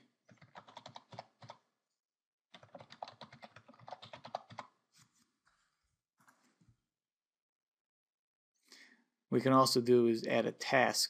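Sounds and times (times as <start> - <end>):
computer keyboard typing: 0.3 - 1.6, 2.5 - 4.8.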